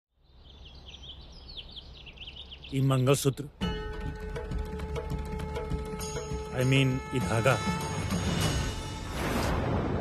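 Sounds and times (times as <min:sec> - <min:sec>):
small birds chirping: 0:00.1 - 0:07.0.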